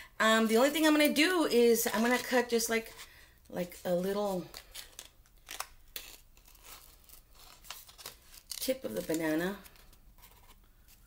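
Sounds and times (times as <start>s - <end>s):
soft paper handling: 1.8s - 11.0s.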